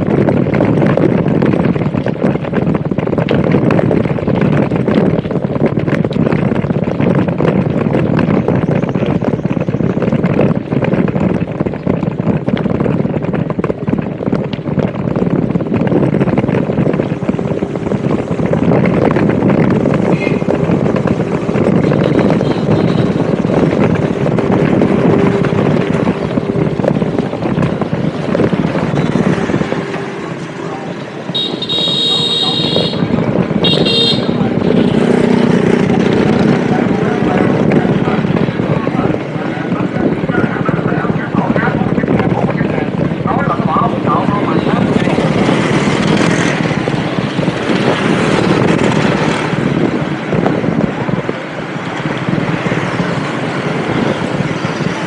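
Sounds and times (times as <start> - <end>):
motorbike engine running: 0.0 - 55.0
wind and road noise: 0.0 - 55.0
vehicle horn beeps: 20.1 - 20.4, 31.3 - 34.4.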